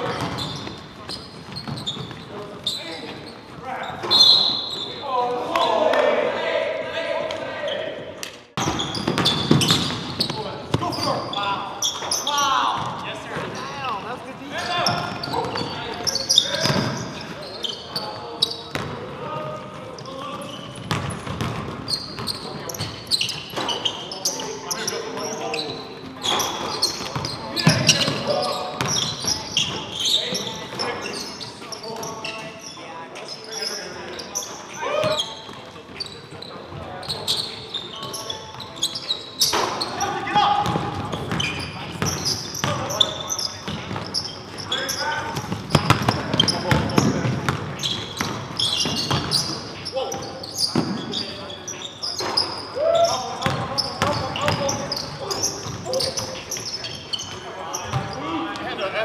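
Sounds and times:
players calling out: 0.0 - 59.0
basketball bouncing on hardwood floor: 45.4 - 49.3.

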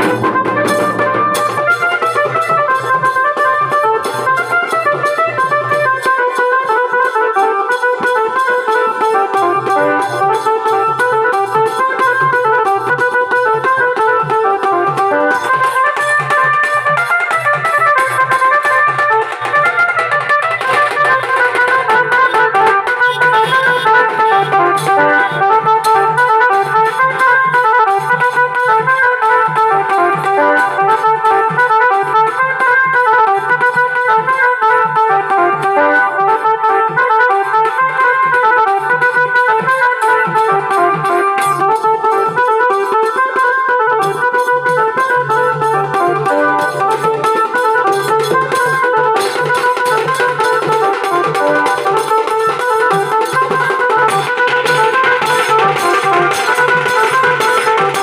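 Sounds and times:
electronic keyboard melody: 0.0 - 5.0, 6.6 - 58.0
drums beaten steadily: 0.0 - 58.0.

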